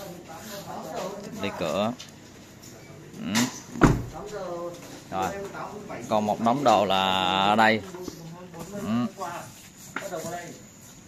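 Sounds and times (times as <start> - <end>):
car door shutting: 3.8 - 4.2.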